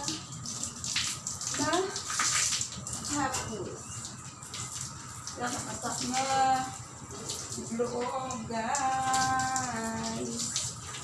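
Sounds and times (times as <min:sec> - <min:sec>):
hose water splashing on tiles: 0:00.0 - 0:11.0.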